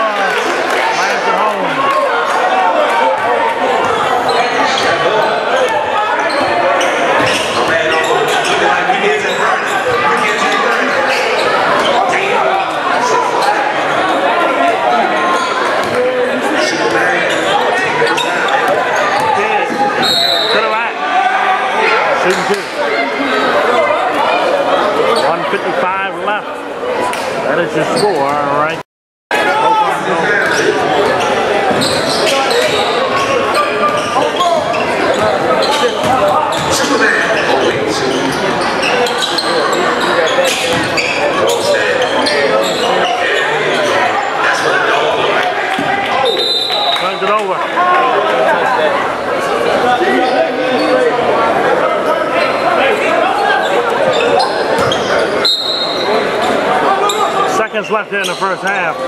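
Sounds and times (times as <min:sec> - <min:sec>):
crowd chatter: 0:00.0 - 0:59.0
basketball bouncing on court: 0:54.8 - 0:55.1.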